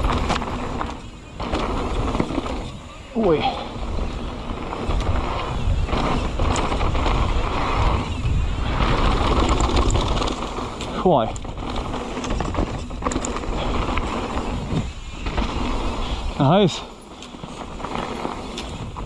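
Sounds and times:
rattles and knocks from bumps: 0:00.0 - 0:02.8, 0:09.0 - 0:15.6
bike tyres rolling over dirt: 0:00.0 - 0:19.0
wind on camera microphone: 0:01.7 - 0:16.4.

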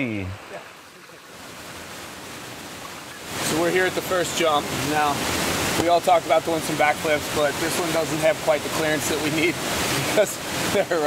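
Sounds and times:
water rushing in rocky stream: 0:00.0 - 0:11.0.

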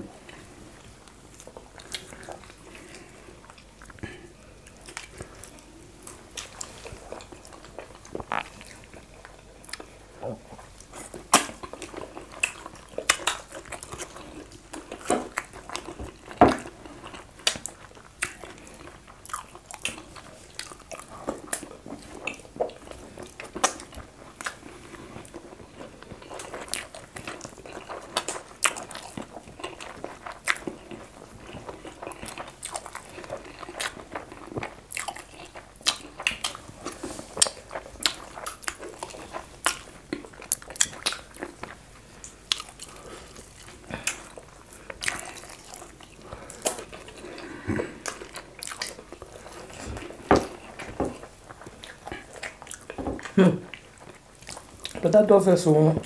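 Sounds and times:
wet chewing and mouth smacks: 0:01.0 - 0:04.0, 0:04.6 - 0:55.0.

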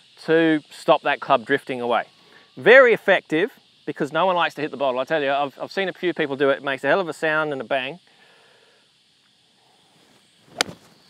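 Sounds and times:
golf iron striking ball: 0:10.5 - 0:10.9.

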